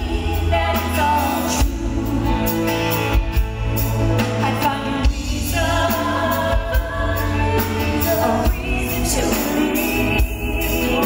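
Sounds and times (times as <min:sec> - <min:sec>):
woman singing: 0:00.0 - 0:03.2, 0:04.2 - 0:11.0
drums: 0:00.0 - 0:11.0.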